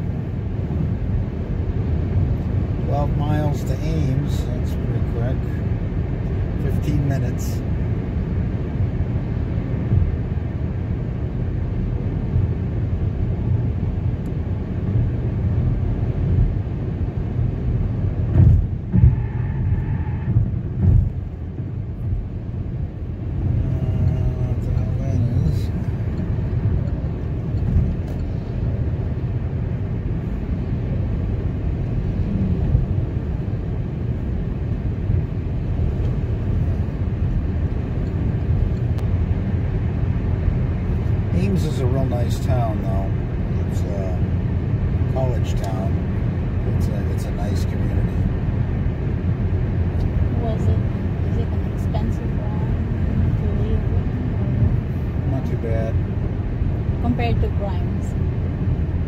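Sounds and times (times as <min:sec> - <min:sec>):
car road and engine noise: 0:00.0 - 0:59.0
car bumps: 0:18.2 - 0:22.2.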